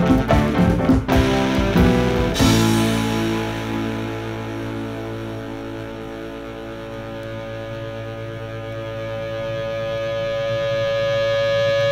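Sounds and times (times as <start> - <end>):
rock music from vinyl record: 0.0 - 11.9.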